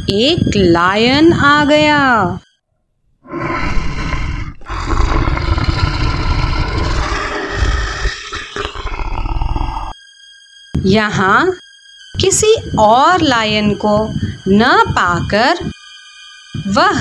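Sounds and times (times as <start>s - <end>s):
lion roaring: 3.3s - 10.0s.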